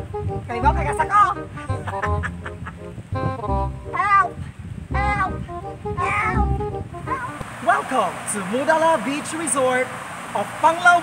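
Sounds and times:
background music: 0:00.0 - 0:07.4.

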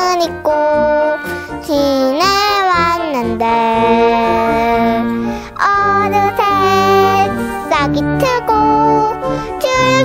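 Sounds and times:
child singing: 0:00.0 - 0:10.0
musical accompaniment: 0:00.0 - 0:10.0.

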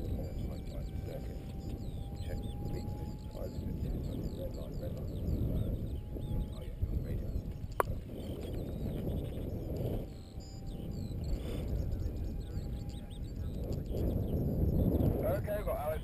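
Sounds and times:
small birds chirping: 0:00.0 - 0:16.0
wind buffeting microphone: 0:00.0 - 0:16.0
sharp click: 0:07.7 - 0:08.0.

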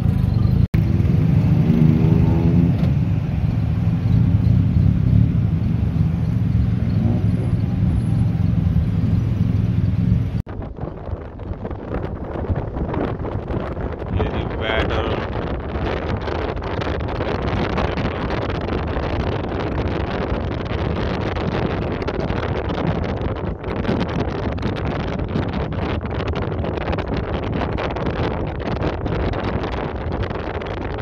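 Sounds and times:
wind rushing on microphone: 0:00.0 - 0:31.0.

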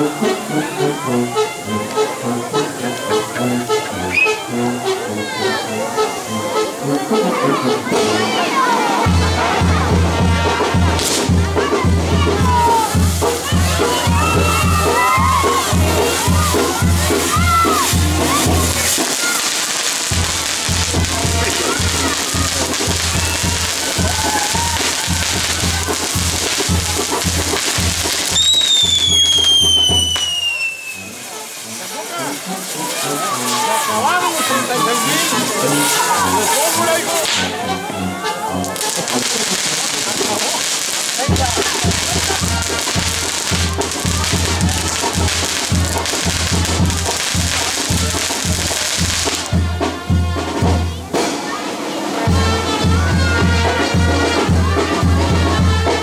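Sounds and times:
crowd voices: 0:00.0 - 0:56.0
fireworks crackling and sizzling: 0:00.0 - 0:56.0
music: 0:00.0 - 0:56.0
falling firework whistle: 0:04.1 - 0:04.4, 0:17.4 - 0:34.0.

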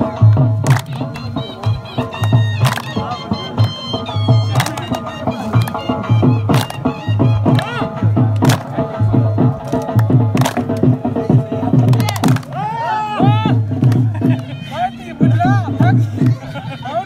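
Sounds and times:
low drum beat: 0:00.0 - 0:14.4
sharp clap: 0:00.3 - 0:03.8, 0:04.5 - 0:08.9, 0:09.5 - 0:11.0, 0:11.8 - 0:12.6, 0:13.8 - 0:14.4.

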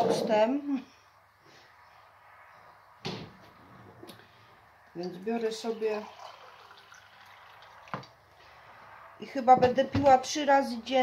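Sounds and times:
water pouring into a mug: 0:05.0 - 0:08.4.

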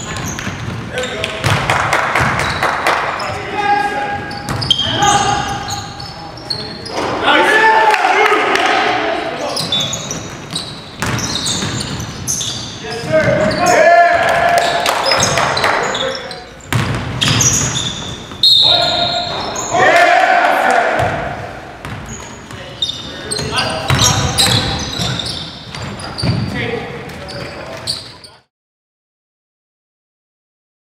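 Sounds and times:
sneaker squeaks: 0:00.0 - 0:01.6, 0:02.2 - 0:07.3, 0:09.4 - 0:19.8, 0:21.0 - 0:28.5
basketball bouncing on wooden floor: 0:00.0 - 0:02.6, 0:04.5 - 0:04.7, 0:10.2 - 0:12.3, 0:16.7 - 0:18.4, 0:21.0 - 0:22.6, 0:23.4 - 0:26.6
players shouting: 0:03.2 - 0:05.8, 0:06.9 - 0:09.6, 0:12.9 - 0:16.2, 0:18.5 - 0:21.6.

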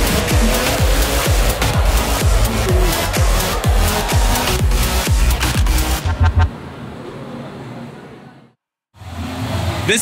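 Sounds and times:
electronic music with bass beats: 0:00.0 - 0:06.5
busy outdoor background noise: 0:00.0 - 0:10.0.

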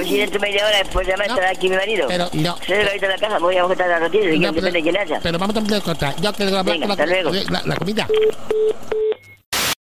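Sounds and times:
telephone busy tone beeps: 0:08.1 - 0:09.4.

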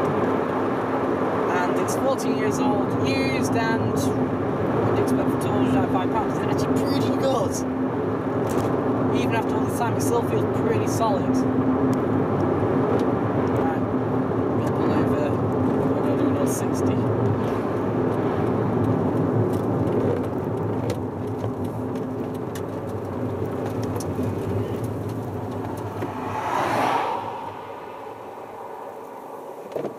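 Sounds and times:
car engine and road noise drone: 0:00.0 - 0:29.9.

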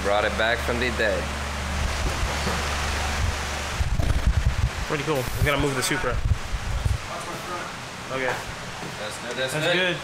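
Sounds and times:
wind buffeting microphone: 0:03.2 - 0:07.1.

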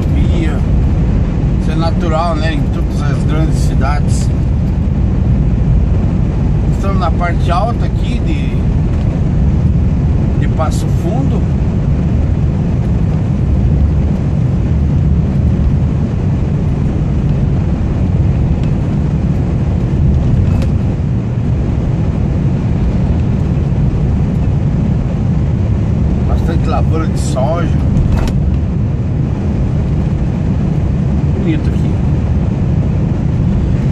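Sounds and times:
truck engine and tyres rumbling: 0:00.0 - 0:33.9.

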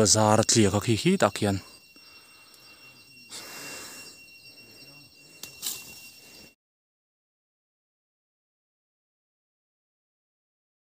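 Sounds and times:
steady high whine: 0:00.0 - 0:06.6.

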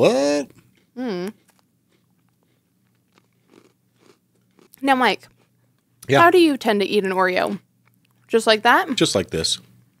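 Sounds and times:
person speaking: 0:00.0 - 0:01.3, 0:06.0 - 0:06.5
cookie crunching while chewed: 0:00.6 - 0:06.2.

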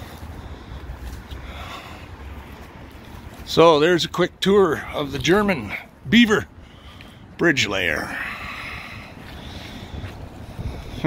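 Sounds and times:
steady outdoor hiss: 0:00.0 - 0:11.0
wind buffeting microphone: 0:08.6 - 0:11.0.

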